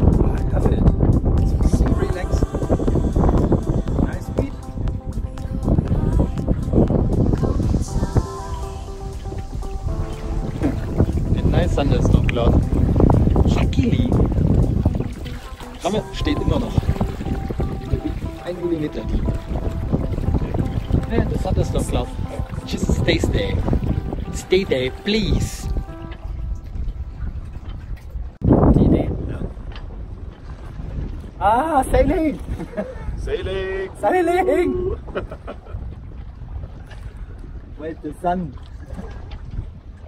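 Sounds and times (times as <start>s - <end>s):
water rushing past boat: 0.0s - 40.0s
wind buffeting microphone: 0.0s - 40.0s
man talking: 3.9s - 4.6s, 15.8s - 17.0s, 24.3s - 25.8s, 33.1s - 35.0s.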